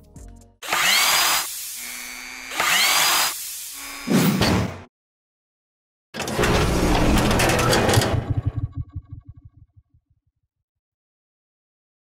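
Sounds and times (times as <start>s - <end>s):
power tool whirring with whine: 0.6s - 4.1s.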